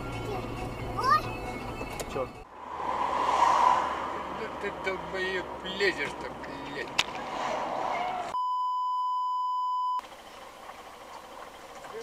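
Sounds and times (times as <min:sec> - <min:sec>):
high-pitched censor bleep: 0:08.4 - 0:10.0
faint road noise hiss: 0:10.0 - 0:12.0.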